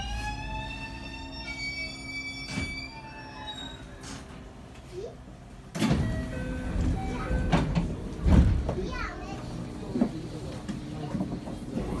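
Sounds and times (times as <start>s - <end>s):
voices with a child: 4.8s - 5.3s, 8.6s - 10.0s.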